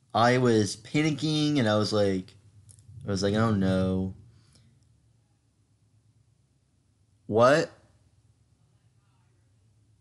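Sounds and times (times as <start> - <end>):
person speaking: 0.2 - 4.3, 7.3 - 7.8.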